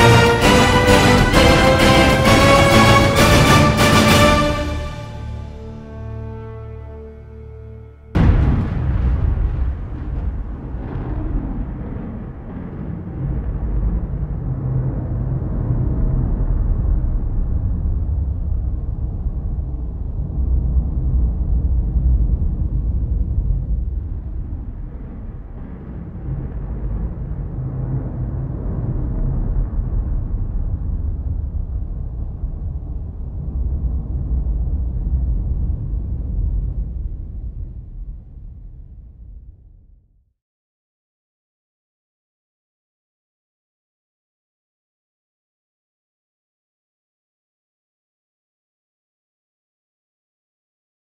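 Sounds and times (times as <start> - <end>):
deep low drone: 0.0 - 40.3.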